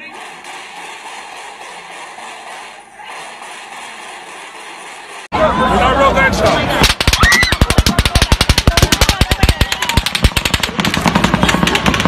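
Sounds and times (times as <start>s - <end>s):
rapid gunfire: 0.0s - 5.3s, 6.8s - 12.0s.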